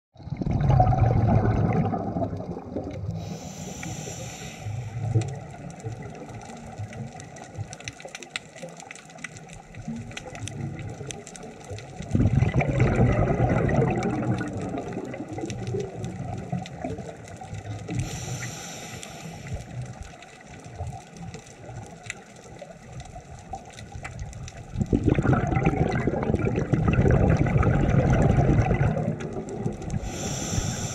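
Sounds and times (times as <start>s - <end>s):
exhaled bubbles rumbling: 0.2s - 3.9s, 4.7s - 18.4s, 19.4s - 30.9s
crackle of faint clicks: 0.7s - 30.9s
regulator inhalation hiss: 3.2s - 5.2s, 17.9s - 19.8s, 30.0s - 30.9s.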